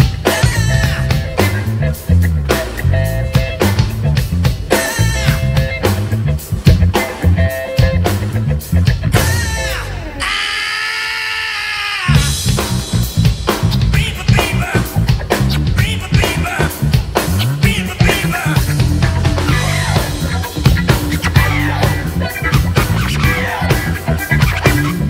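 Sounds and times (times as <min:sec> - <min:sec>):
funk band playing: 0:00.0 - 0:10.6, 0:12.1 - 0:25.0.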